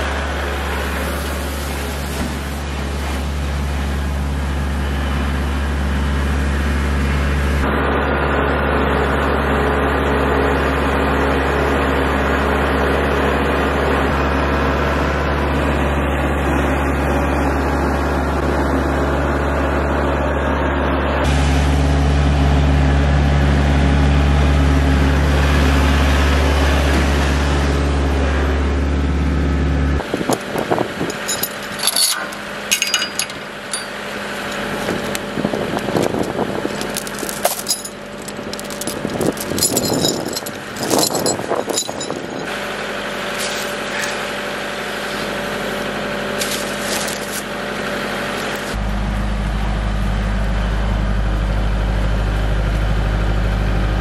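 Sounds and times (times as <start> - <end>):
tractor diesel engine running: 0.0 - 54.0
sharp clicks and knocks: 30.3 - 42.5.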